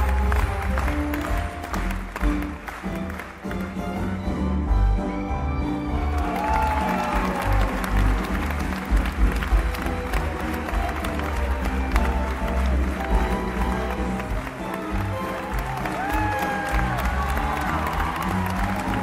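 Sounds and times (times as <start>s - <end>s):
audience applauding: 0.0s - 4.2s, 5.8s - 19.0s
orchestra playing: 0.0s - 19.0s.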